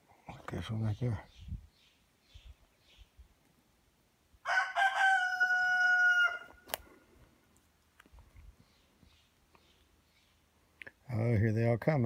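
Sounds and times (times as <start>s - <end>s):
rooster crowing: 4.4s - 6.6s.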